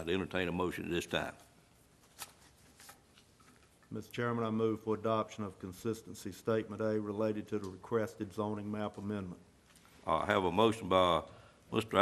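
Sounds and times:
paper rustling and clicking: 0:02.0 - 0:03.8.

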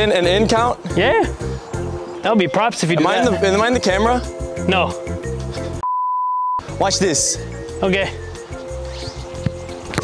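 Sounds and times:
background music with bass beat: 0:02.8 - 0:05.8, 0:06.6 - 0:10.0
censor bleep: 0:05.8 - 0:06.6.

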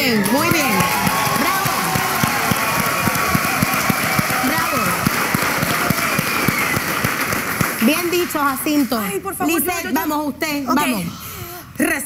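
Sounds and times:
crowd cheering: 0:00.0 - 0:08.4
audience clapping: 0:00.0 - 0:09.1.

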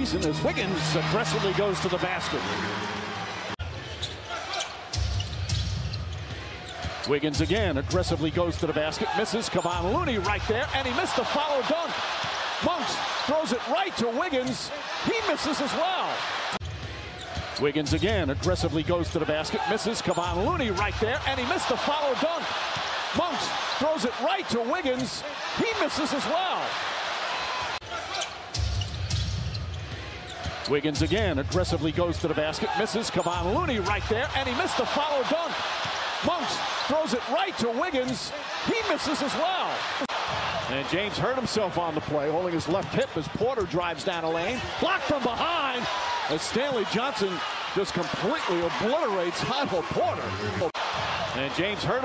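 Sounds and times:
basketball court sounds: 0:00.0 - 0:52.0
crowd noise: 0:00.0 - 0:52.0.

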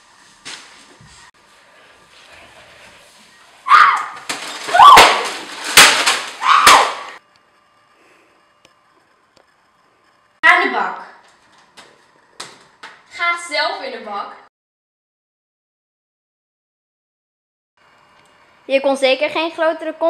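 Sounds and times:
loud cries or shouts: 0:03.7 - 0:05.4, 0:06.4 - 0:07.2.

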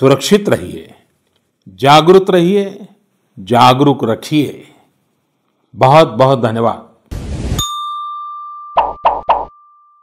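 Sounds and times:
high chime tone: 0:07.6 - 0:10.0.

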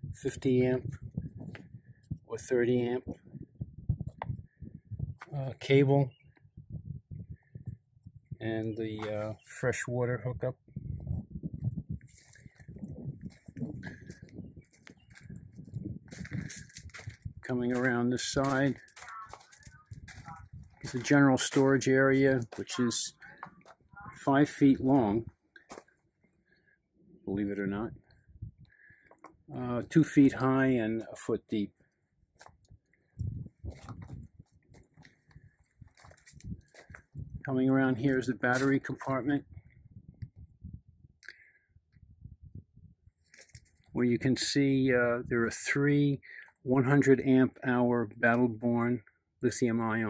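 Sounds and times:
footsteps on gravel: 0:12.1 - 0:23.9, 0:33.6 - 0:37.2.

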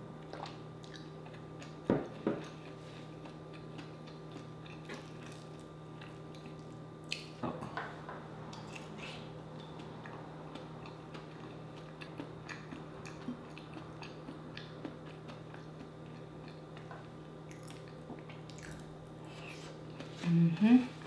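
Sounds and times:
faint steady hum: 0:00.0 - 0:21.0
person chewing food: 0:00.2 - 0:21.0.

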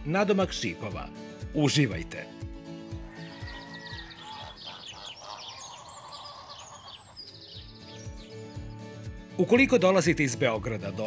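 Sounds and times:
music with a light beat: 0:00.0 - 0:04.7, 0:07.0 - 0:11.0
birds chirping: 0:02.8 - 0:09.0.

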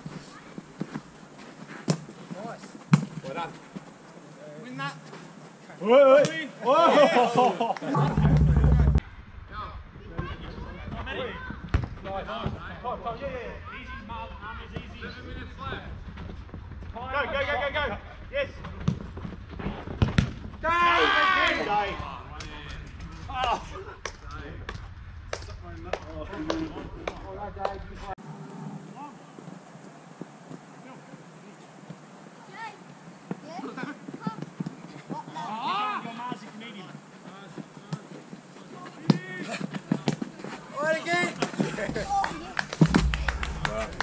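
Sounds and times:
knocks and scuffs of play: 0:00.0 - 0:04.3, 0:33.2 - 0:44.0
feet and ball knocks on turf: 0:19.9 - 0:20.4
football kick thud: 0:42.8 - 0:43.9
loud ball strike: 0:42.8 - 0:44.0.

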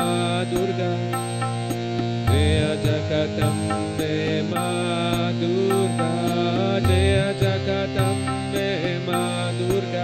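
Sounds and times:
harmonium chords: 0:00.0 - 0:10.0
man chanting devotional melody: 0:00.0 - 0:10.0
steady percussion beat: 0:01.3 - 0:05.3.

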